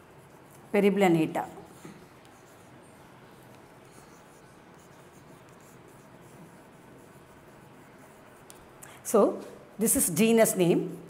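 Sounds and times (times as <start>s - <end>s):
chalk scratching on blackboard: 0.0s - 8.8s.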